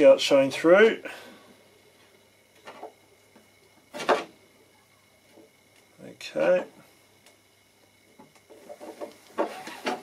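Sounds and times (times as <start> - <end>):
rope rubbing and scraping: 8.5 - 10.0.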